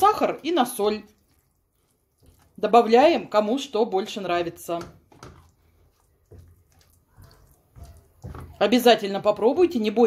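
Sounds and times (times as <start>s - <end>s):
spatula stirring thick wet spread: 0.0s - 10.0s.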